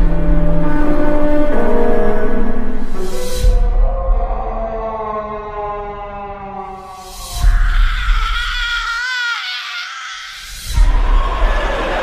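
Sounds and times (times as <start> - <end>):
low rumble: 0.0 - 8.9, 10.6 - 12.0
eerie high-pitched wavering wail: 3.7 - 12.0.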